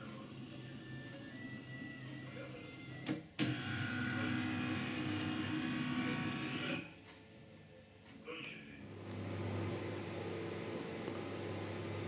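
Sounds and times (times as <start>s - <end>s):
scanner motor whirring: 3.4s - 6.8s.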